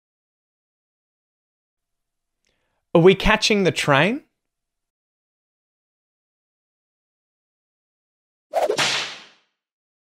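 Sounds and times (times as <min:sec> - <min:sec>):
whoosh: 0:08.6 - 0:09.4.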